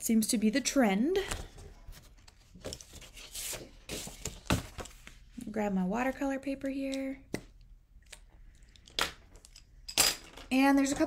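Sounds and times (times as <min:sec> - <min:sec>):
paper rustling: 0:01.3 - 0:05.2.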